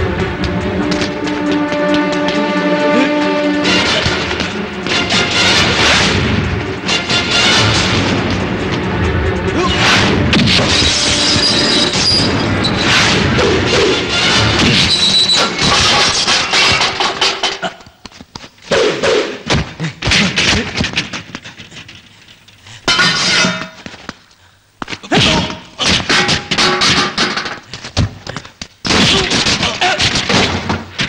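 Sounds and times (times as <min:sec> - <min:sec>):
action film background music: 0:00.0 - 0:15.9.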